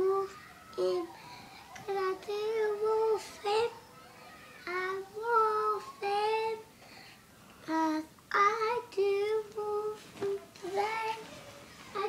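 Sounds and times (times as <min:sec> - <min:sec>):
boy singing in a high voice: 0:07.7 - 0:11.3.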